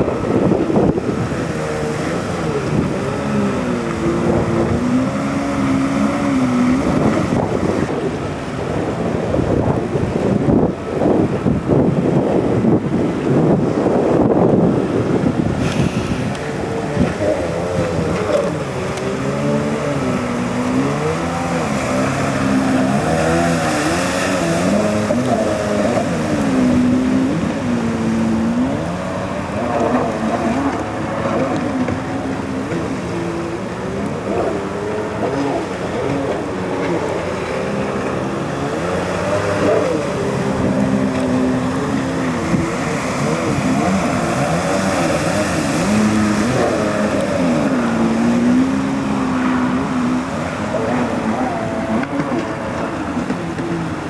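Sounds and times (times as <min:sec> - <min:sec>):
jet ski engine revving: 0:00.0 - 0:54.0.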